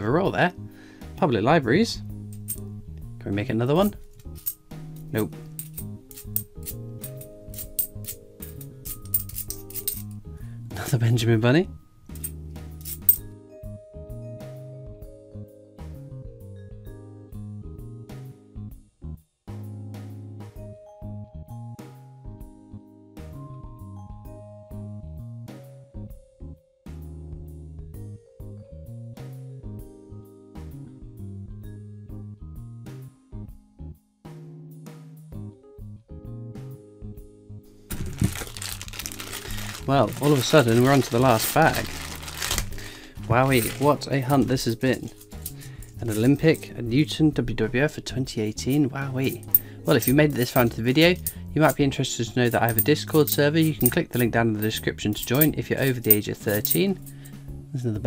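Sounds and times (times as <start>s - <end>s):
background music: 0.0s - 58.0s
coins clinking: 2.2s - 2.7s, 4.1s - 10.2s, 12.1s - 13.3s, 37.9s - 46.7s, 49.2s - 51.8s, 52.4s - 57.3s.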